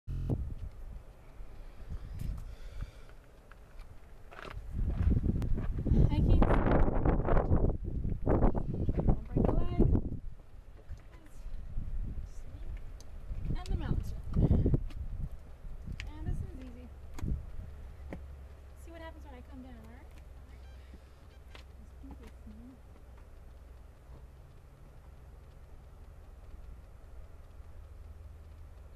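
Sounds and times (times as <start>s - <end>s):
low rumble: 0.1s - 2.6s
low wind rumble on microphone: 0.1s - 3.1s, 4.5s - 20.1s
faint clicks: 12.6s - 28.9s.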